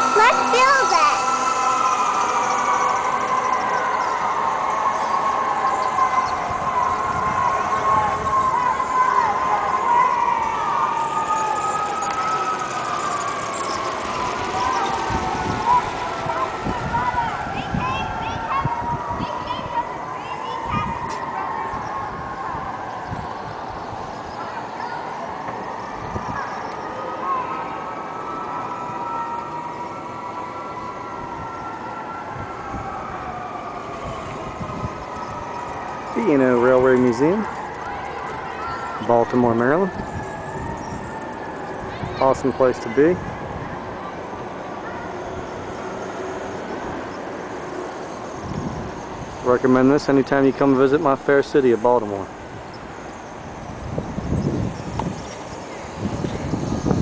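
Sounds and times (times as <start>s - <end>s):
model train whine: 0.0s - 6.4s, 8.5s - 17.4s, 33.8s - 57.0s
wind on camera microphone: 6.2s - 8.8s, 14.6s - 20.0s, 20.6s - 24.4s, 25.9s - 26.6s, 34.0s - 35.9s, 39.2s - 42.5s, 48.4s - 49.5s, 52.4s - 57.0s.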